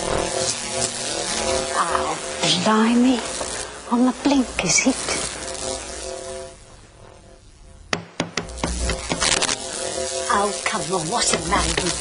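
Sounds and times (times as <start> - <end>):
electrical crackling and static: 0.0 - 12.0
sharp electrical snaps: 0.0 - 12.0.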